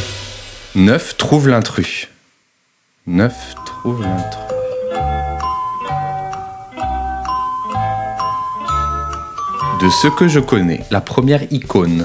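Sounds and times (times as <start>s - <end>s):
man's voice: 3.1s - 4.6s, 9.7s - 12.0s
bell-like mallet notes: 3.3s - 10.9s.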